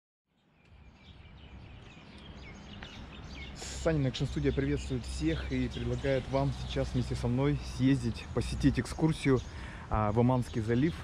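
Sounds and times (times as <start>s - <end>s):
small birds chirping: 0.3s - 11.0s.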